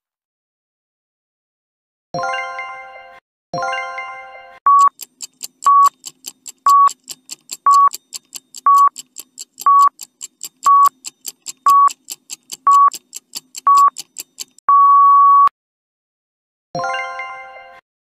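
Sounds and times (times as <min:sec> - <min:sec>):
short electronic beeps: 0:04.7 - 0:05.0, 0:05.6 - 0:06.0, 0:06.7 - 0:07.0, 0:07.6 - 0:08.0, 0:08.6 - 0:09.0, 0:09.6 - 0:10.0, 0:10.6 - 0:11.0, 0:11.6 - 0:12.0, 0:12.7 - 0:13.0, 0:13.6 - 0:15.5
quick timer ticks: 0:04.7 - 0:14.6.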